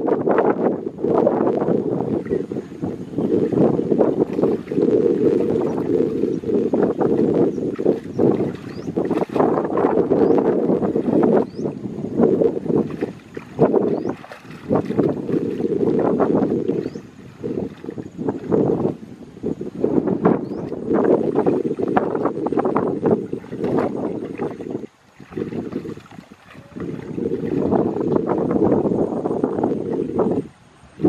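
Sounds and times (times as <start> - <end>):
legs wading through water: 1.8 - 19.0, 19.8 - 28.7.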